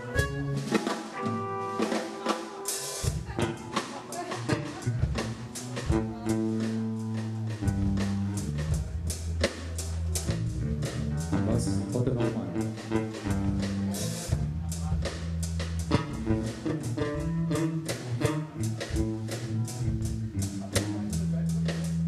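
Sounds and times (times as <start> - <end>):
electric guitar: 0.0 - 8.8, 10.5 - 14.4, 15.8 - 21.3
drums with snare and cymbal: 0.0 - 22.0
electric bass low notes: 3.1 - 22.0.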